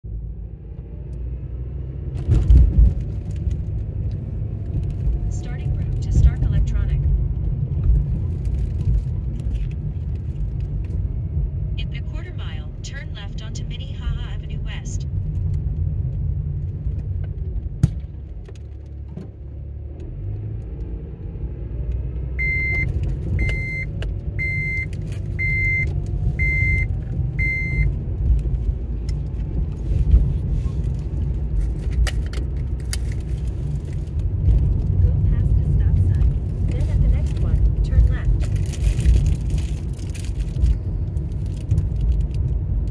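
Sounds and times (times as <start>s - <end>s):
engine and tyre rumble: 0.0s - 42.9s.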